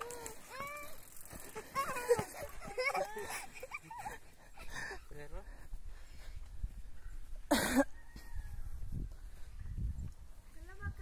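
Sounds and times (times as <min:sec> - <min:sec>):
person coughing: 0:07.5 - 0:07.9.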